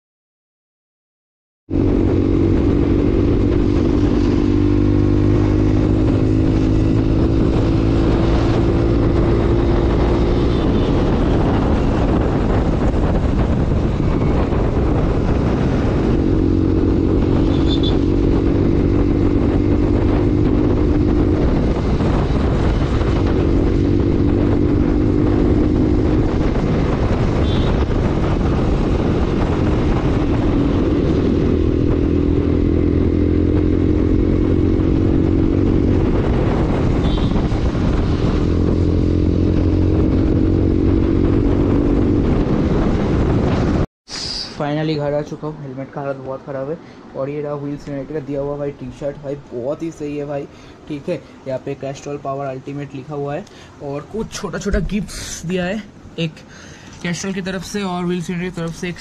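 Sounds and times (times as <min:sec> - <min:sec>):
motorcycle engine accelerating: 0:01.7 - 0:43.9
wind and road noise: 0:01.7 - 0:59.0.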